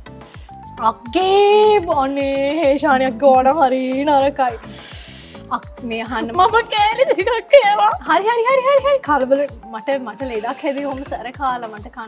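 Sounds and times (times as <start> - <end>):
background music with beat: 0.0 - 12.0
woman's voice: 0.8 - 4.6, 5.5 - 12.0
short hiss: 3.8 - 5.5, 10.2 - 11.2.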